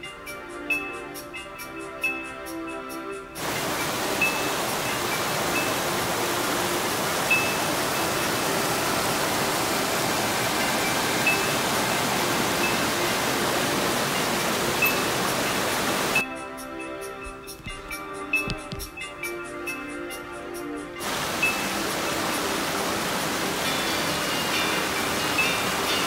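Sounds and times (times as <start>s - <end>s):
soft background music: 0.0s - 26.0s
water rushing over rocks: 3.4s - 16.2s, 21.0s - 26.0s.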